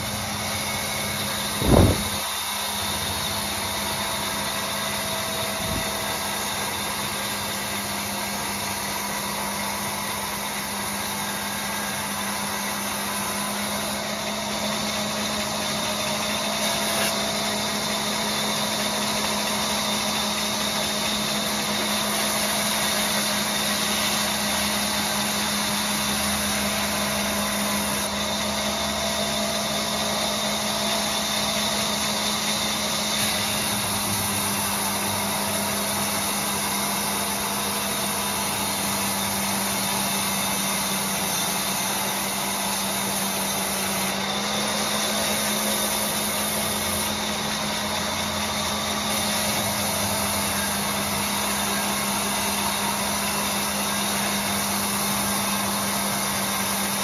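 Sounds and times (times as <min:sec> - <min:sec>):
band saw cutting log: 0:00.0 - 0:57.0.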